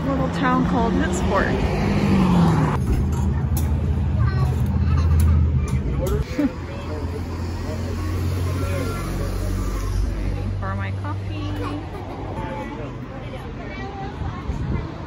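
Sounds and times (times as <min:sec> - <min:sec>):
vehicle engine hum: 0:00.0 - 0:15.0
faint voices: 0:03.2 - 0:15.0.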